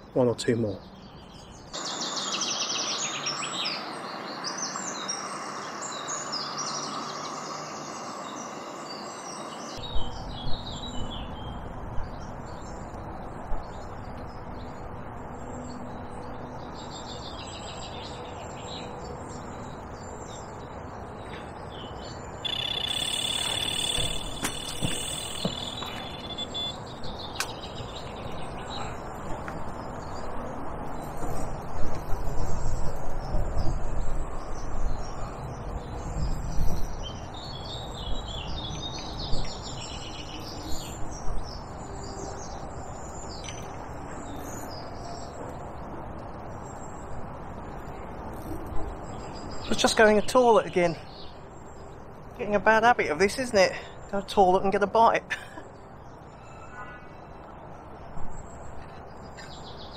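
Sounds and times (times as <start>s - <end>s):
small birds chirping: 0.0s - 59.9s
wind rumbling on microphone: 9.8s - 15.4s, 23.2s - 49.8s
steady high trill: 22.4s - 26.8s
sharp knocks: 23.4s - 26.1s.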